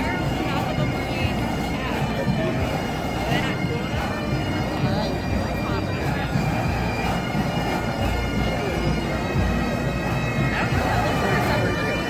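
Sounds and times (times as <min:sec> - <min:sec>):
street crowd chatter: 0:00.0 - 0:12.0.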